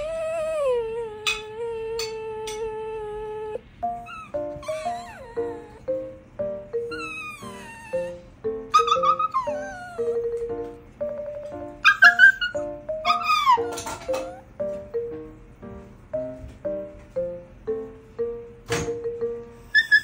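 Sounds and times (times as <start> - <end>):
pet animal crying: 0.0 - 14.6, 19.6 - 20.0
plucked background music: 3.8 - 19.7.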